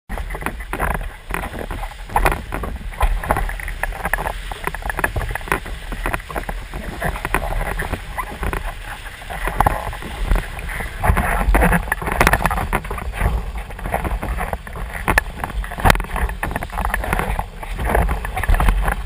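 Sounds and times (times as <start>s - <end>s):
water slapping and splashing: 0.1s - 19.0s
wind rumbling on microphone: 0.1s - 19.0s.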